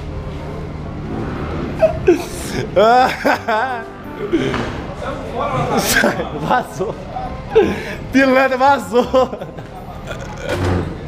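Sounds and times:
low background noise: 0:00.0 - 0:11.0
men talking: 0:02.5 - 0:10.6.

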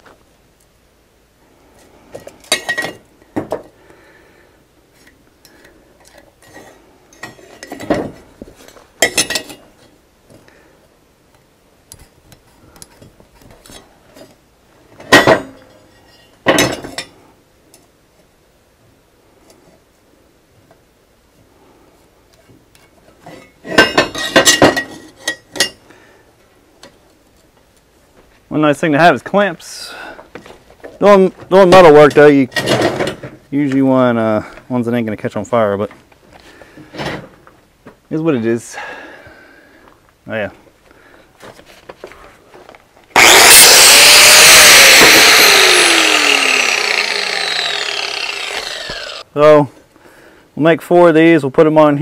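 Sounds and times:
metal tools clanking on steel table: 0:02.5 - 0:03.0, 0:09.0 - 0:09.6, 0:23.3 - 0:25.8.

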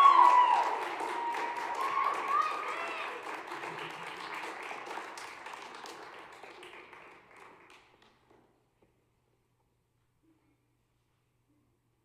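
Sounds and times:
audience applause: 0:00.0 - 0:08.0.

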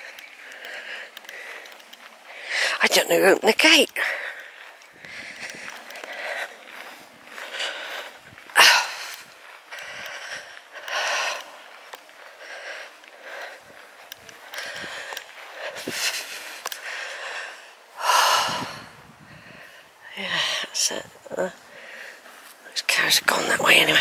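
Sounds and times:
person breathing heavily: 0:00.0 - 0:02.8, 0:03.9 - 0:20.8, 0:21.4 - 0:22.5.

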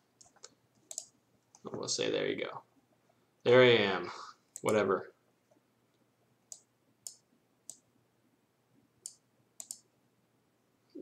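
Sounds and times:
computer mouse clicking: 0:00.2 - 0:01.6, 0:06.5 - 0:07.9, 0:09.0 - 0:09.9.

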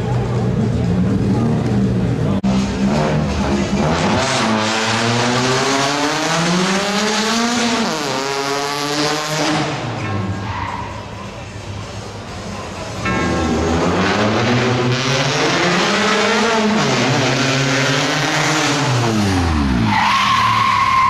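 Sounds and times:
rally car engine accelerating: 0:00.0 - 0:10.5, 0:12.5 - 0:21.0.

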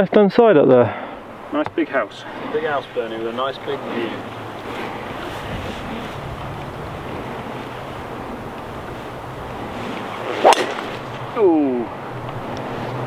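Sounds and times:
wind noise: 0:02.2 - 0:13.0
golf club striking ball: 0:10.0 - 0:11.2.

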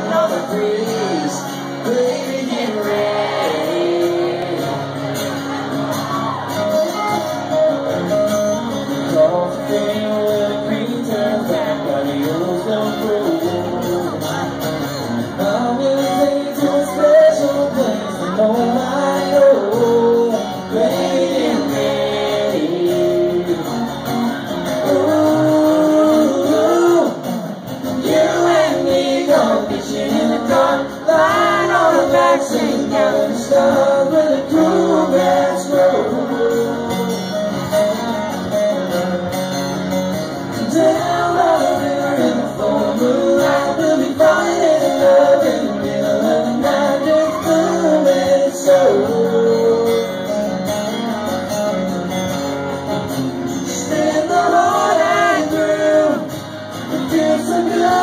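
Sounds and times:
strummed acoustic guitars: 0:00.0 - 0:58.0.

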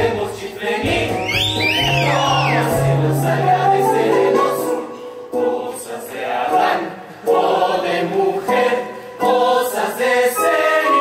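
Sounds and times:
chorus singing a show tune: 0:00.0 - 0:11.0.

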